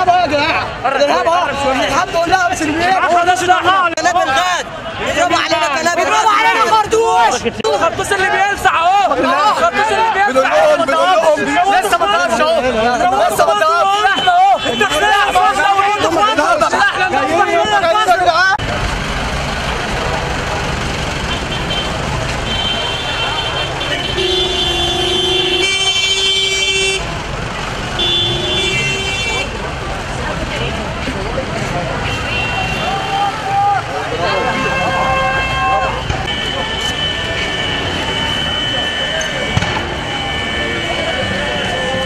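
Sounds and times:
street crowd din: 0.0s - 42.0s
people shouting: 2.7s - 18.6s, 32.2s - 42.0s
horn blasts: 21.3s - 27.1s, 28.0s - 29.6s, 34.4s - 42.0s.

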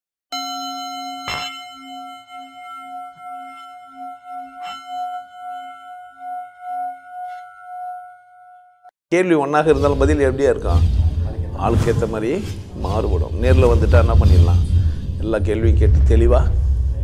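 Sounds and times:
singing bowl ringing: 0.4s - 8.9s.

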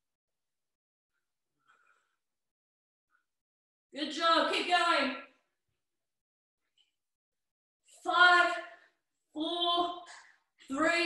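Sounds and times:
woman speaking: 4.0s - 5.4s, 8.0s - 8.8s, 9.4s - 11.0s.

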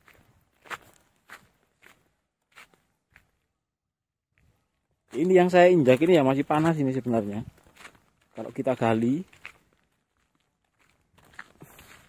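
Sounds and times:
faint footsteps on volcanic rock: 4.4s - 12.0s.

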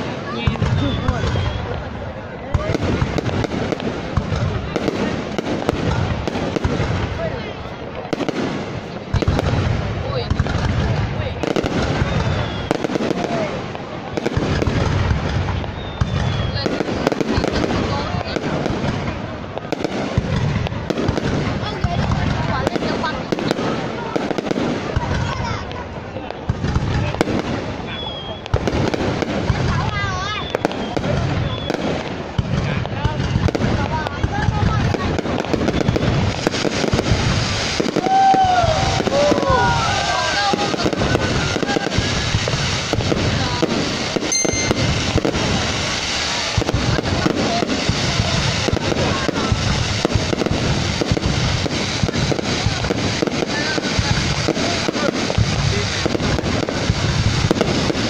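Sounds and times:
fireworks crackling: 0.0s - 58.0s
firework shells launching and bursting: 38.8s - 58.0s.

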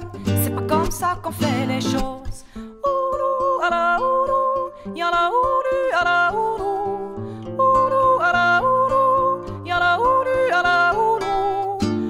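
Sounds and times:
acoustic guitar accompaniment: 0.0s - 12.0s.

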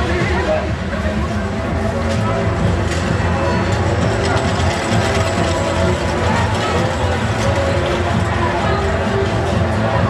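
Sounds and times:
crowd voices: 0.0s - 10.0s
fairground music: 0.0s - 10.0s
roller coaster clattering on track: 0.0s - 10.0s.

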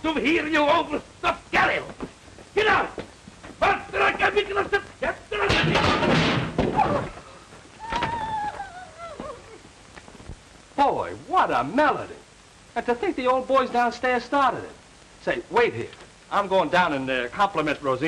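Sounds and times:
raised voices: 2.6s - 3.0s, 3.6s - 6.1s.

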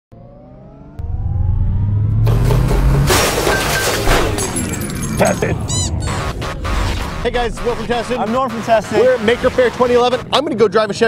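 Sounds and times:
faint rising tones: 0.1s - 3.1s
loud low rumble: 0.3s - 3.4s
sudden impact hit: 1.0s - 4.8s
loud noisy bursts: 6.0s - 10.3s.

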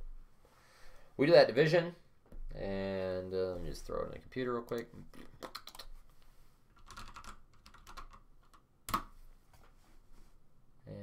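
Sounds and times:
computer keyboard typing: 5.4s - 5.9s, 6.8s - 9.0s.

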